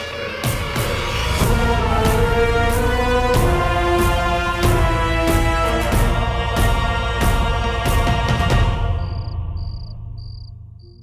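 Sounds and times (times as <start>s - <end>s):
crickets chirping: 8.8s - 11.0s.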